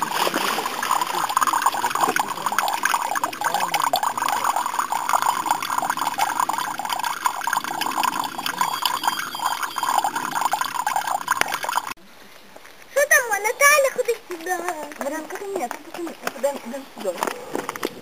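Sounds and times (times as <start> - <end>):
water pouring and splashing: 0.0 - 12.0.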